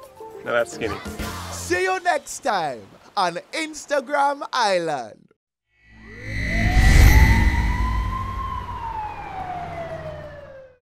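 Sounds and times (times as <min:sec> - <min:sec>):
low rumble: 0:05.9 - 0:10.4
gliding tone: 0:05.9 - 0:10.6.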